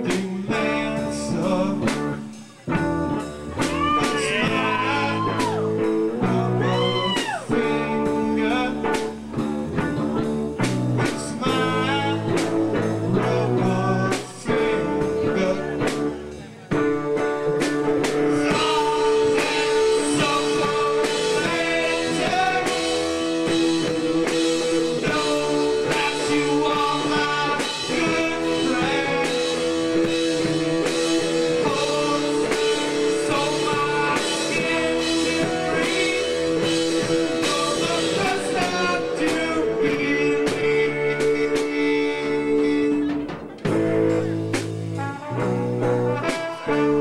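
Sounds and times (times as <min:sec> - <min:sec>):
person singing: 0:00.0 - 0:10.4, 0:11.0 - 0:43.8
live rock band playing: 0:00.0 - 0:47.0.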